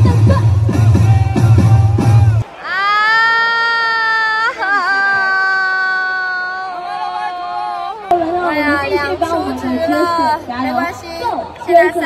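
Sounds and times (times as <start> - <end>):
woman whining wail: 2.6 - 7.9.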